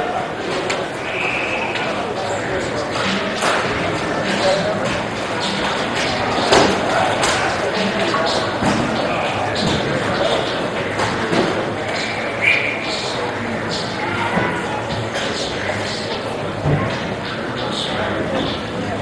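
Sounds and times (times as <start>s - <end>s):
chatter in echoing rink: 0.0s - 19.0s.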